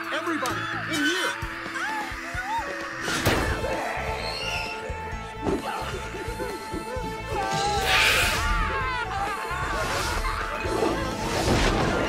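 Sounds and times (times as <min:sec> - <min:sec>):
tense cartoon background music: 0:00.0 - 0:12.0.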